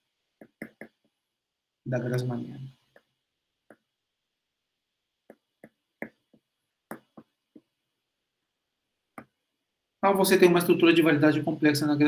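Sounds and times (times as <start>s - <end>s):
stylus tapping on tablet screen: 0.3s - 1.2s, 2.9s - 4.0s, 5.2s - 7.8s, 9.1s - 9.5s.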